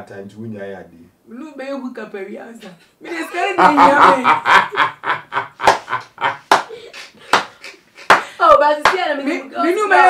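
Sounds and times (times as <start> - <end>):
group of people laughing: 3.4 - 8.2.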